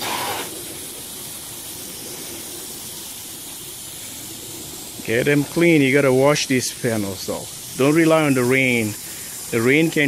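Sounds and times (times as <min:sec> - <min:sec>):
hose spraying water on glass: 0:00.0 - 0:10.0.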